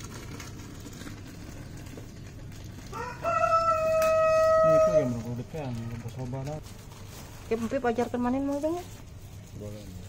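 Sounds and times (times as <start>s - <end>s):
rooster crowing: 2.9s - 5.3s.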